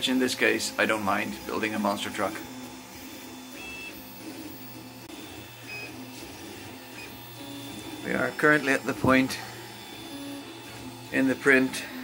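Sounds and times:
printer motors humming and whirring: 0:00.0 - 0:12.0.

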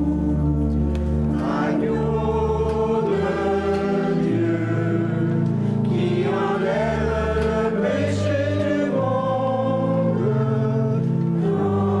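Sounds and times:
church choir singing a hymn: 0:00.0 - 0:12.0
low pipe organ notes: 0:00.0 - 0:12.0.

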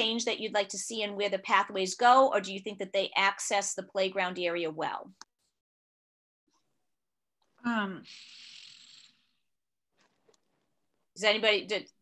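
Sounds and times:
breath into microphone: 0:08.0 - 0:09.4.

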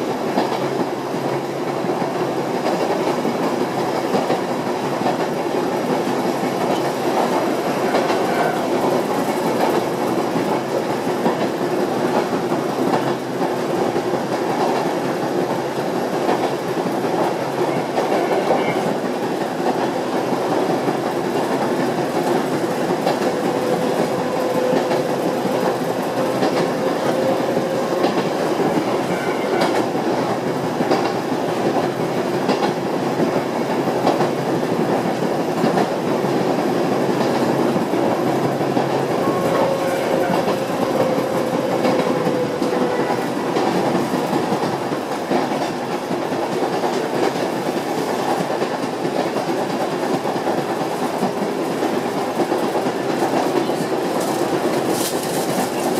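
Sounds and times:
train wheels rumbling on rails: 0:00.0 - 0:55.9
wheels clacking over rail joints: 0:00.3 - 0:55.9.

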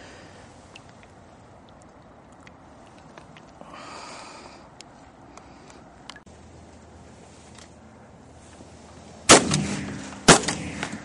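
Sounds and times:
shotgun shots: 0:09.3 - 0:11.0.

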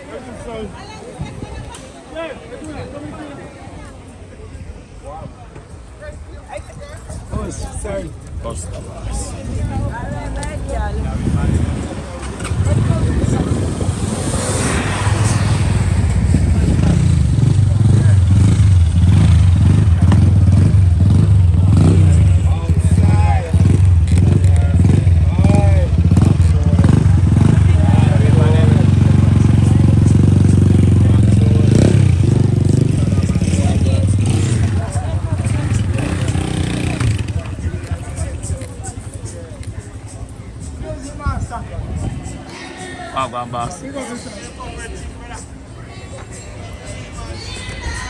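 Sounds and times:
people talking indistinctly: 0:00.0 - 0:48.0
vehicle engine running: 0:14.6 - 0:38.2.

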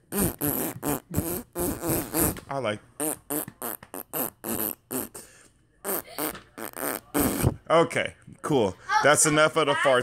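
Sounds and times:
child making fake fart noises: 0:00.1 - 0:02.4, 0:03.0 - 0:05.2, 0:05.8 - 0:07.6.

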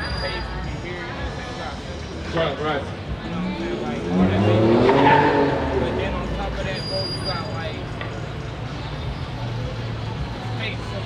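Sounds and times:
car engine accelerating: 0:02.9 - 0:08.1.

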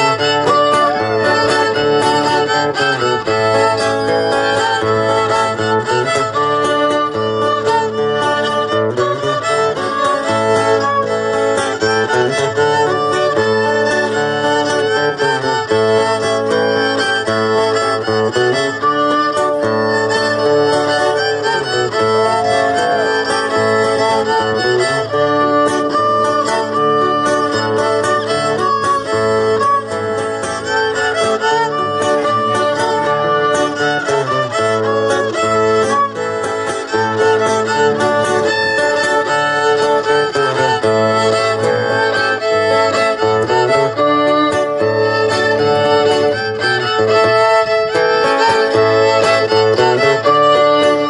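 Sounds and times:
fiddle melody: 0:00.0 - 0:51.0
plucked guitar: 0:00.0 - 0:51.0.

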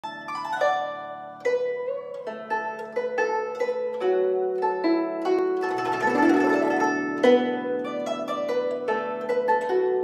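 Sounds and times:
plucked zither melody: 0:00.0 - 0:10.0.

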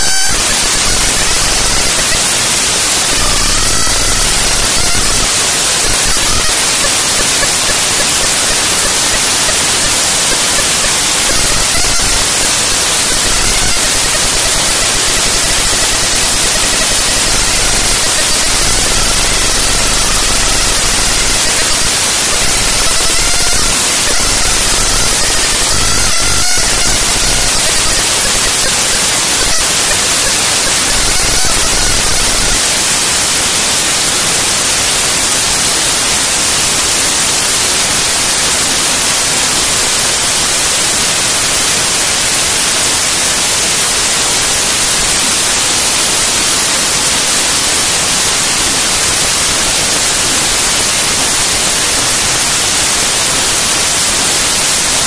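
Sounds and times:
dense white noise static: 0:00.0 - 0:55.0.

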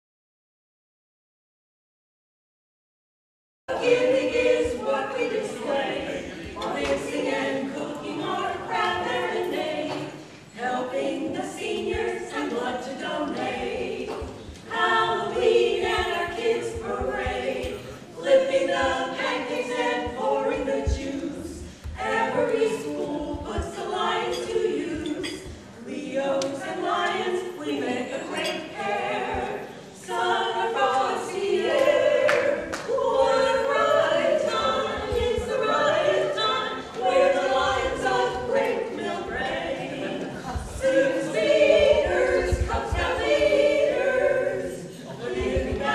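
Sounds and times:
women singing a cappella harmony: 0:03.7 - 0:45.9.

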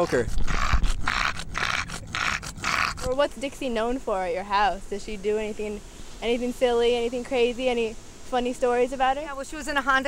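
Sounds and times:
dog panting raspily: 0:00.0 - 0:03.1.

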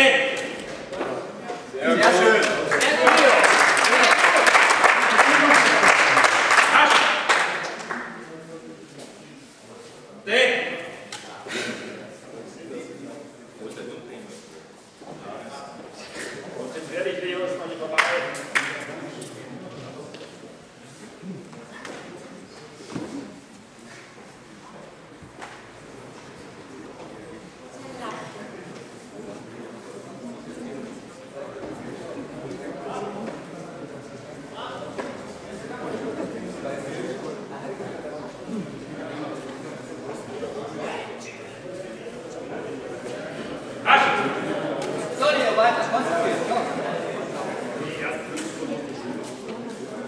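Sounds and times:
indistinct chatter in a hall: 0:00.0 - 0:50.0
faint background voices: 0:07.6 - 0:50.0
man shouting: 0:43.8 - 0:44.4.

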